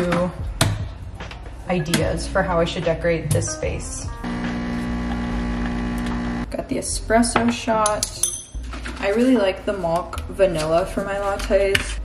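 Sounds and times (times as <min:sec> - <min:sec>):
espresso machine pump humming: 0:04.3 - 0:06.5.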